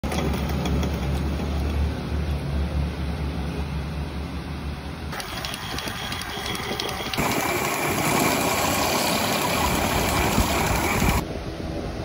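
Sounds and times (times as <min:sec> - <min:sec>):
wood lathe humming: 0:05.1 - 0:11.2.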